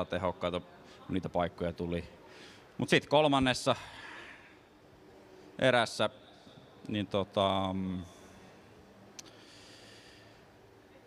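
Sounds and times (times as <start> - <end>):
man breathing in: 9.2 - 10.5.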